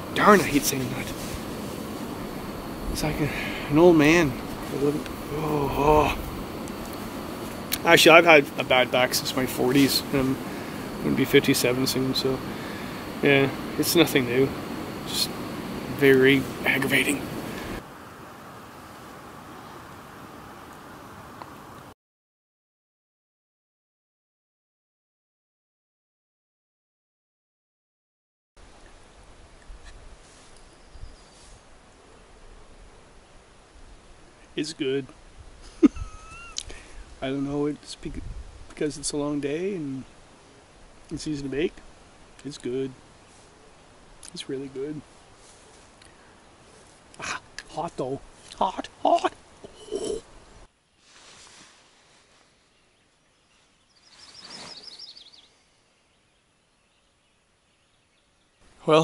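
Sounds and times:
soft rush of noise: 0.0 - 21.9, 28.6 - 59.0
soft outdoor hiss: 0.0 - 22.0, 28.6 - 59.0
small bird singing: 30.6 - 31.5, 52.6 - 58.8.

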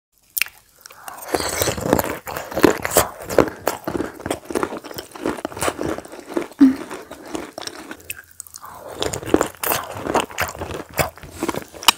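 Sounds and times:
food crunching while chewed: 0.2 - 11.9.

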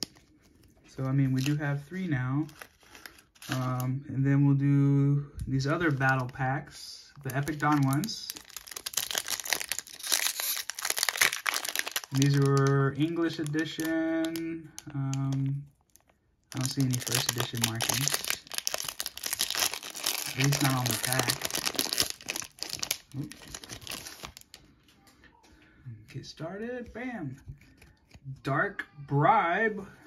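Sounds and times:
foil pack crinkling and tearing: 2.4 - 3.9, 7.2 - 24.6.

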